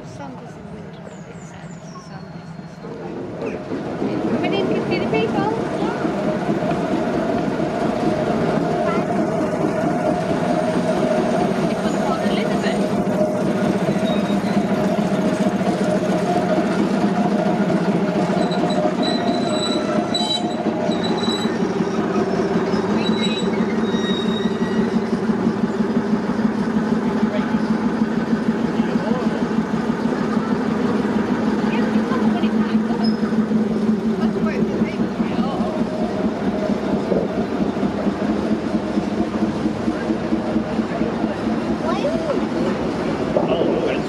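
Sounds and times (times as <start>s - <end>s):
diesel locomotive engine running: 0.0s - 44.0s
train coaches rolling on track: 0.0s - 44.0s.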